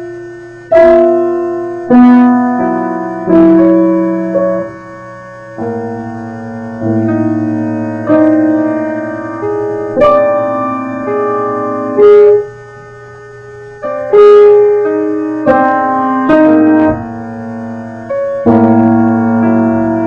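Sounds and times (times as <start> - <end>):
solo piano slow notes: 0.0 - 20.0.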